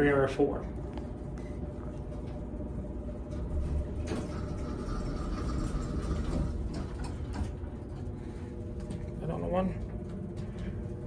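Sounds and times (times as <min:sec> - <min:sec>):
elevator low rumble: 0:00.0 - 0:11.0
elevator doors sliding open: 0:01.4 - 0:11.0.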